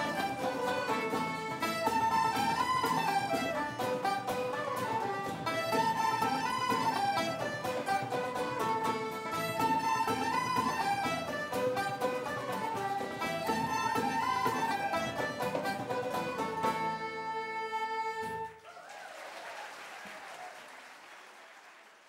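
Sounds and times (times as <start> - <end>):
strummed acoustic guitars: 0.0 - 18.4
flutes and fiddles melody: 0.0 - 18.6.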